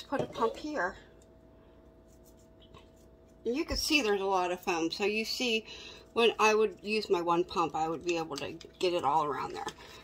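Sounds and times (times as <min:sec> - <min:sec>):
toothbrush scrubbing a denture: 0:02.0 - 0:03.6.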